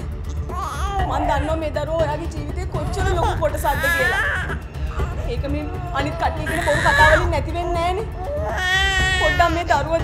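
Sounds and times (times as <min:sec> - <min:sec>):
baby crying: 0:00.4 - 0:01.6, 0:02.9 - 0:09.8.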